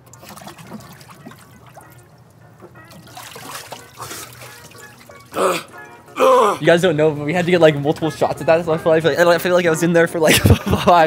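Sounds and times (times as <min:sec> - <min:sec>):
water trickling and sloshing: 0:00.0 - 0:06.0
quiet background music: 0:00.0 - 0:11.0.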